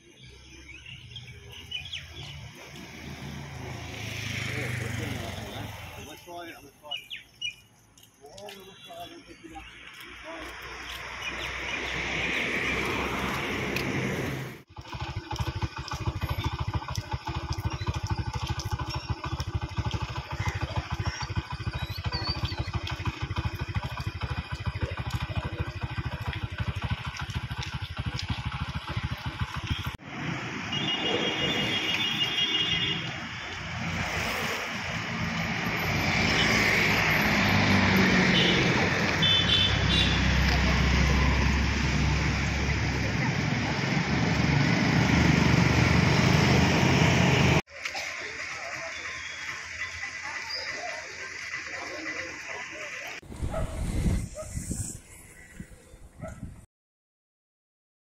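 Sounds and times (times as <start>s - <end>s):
motorcycles passing: 0.3s - 7.6s, 8.4s - 54.9s.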